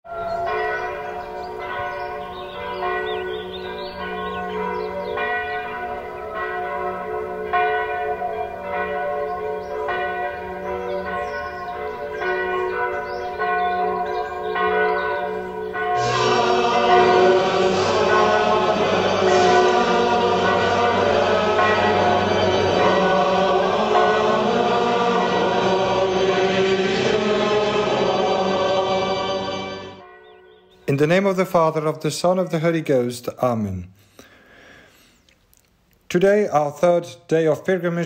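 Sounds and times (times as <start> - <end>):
church bells ringing: 0.1 - 32.8.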